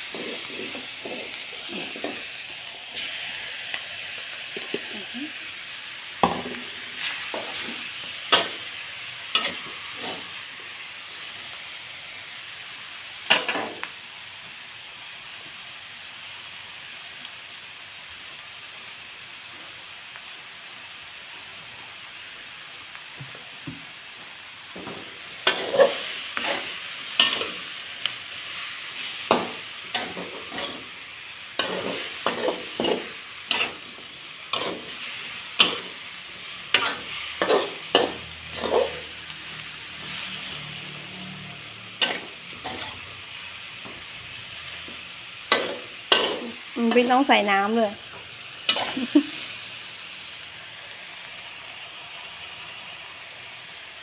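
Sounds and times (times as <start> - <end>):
stir-fry sizzling in wok: 0.0 - 54.0
metal spatula scraping pan: 25.4 - 27.6, 29.3 - 30.9, 31.6 - 33.8, 34.5 - 35.0, 36.7 - 39.1, 42.0 - 43.0.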